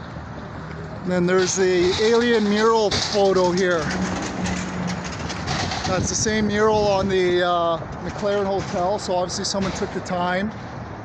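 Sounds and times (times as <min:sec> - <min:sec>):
passing vehicles: 0:00.0 - 0:11.0.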